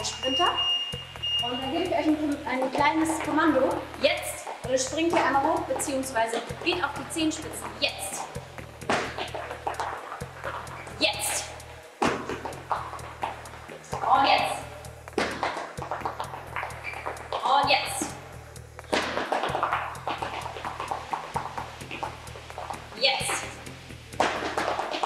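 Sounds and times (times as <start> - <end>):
workout music with steady beat: 0.0 - 25.0
quick footfalls on gym floor: 1.3 - 25.0.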